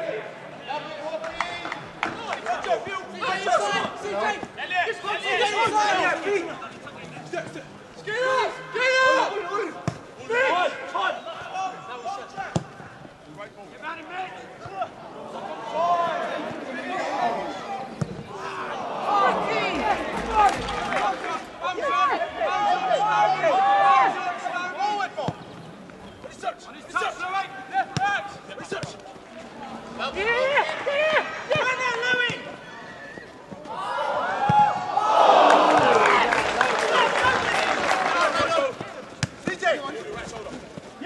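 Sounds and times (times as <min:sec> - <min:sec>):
footballers shouting: 0:00.0 - 0:06.8, 0:08.0 - 0:12.7, 0:14.0 - 0:25.4, 0:30.0 - 0:41.0
players shouting short calls: 0:08.0 - 0:13.0, 0:14.0 - 0:25.4
football being kicked: 0:18.0 - 0:18.2.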